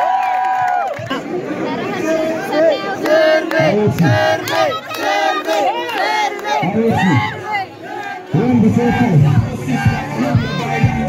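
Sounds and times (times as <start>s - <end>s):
crowd of men shouting: 1.9s - 11.0s.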